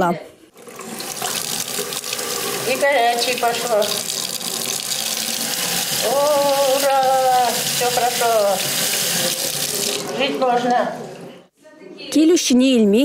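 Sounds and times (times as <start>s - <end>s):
tap water running into sink: 0.6s - 11.3s.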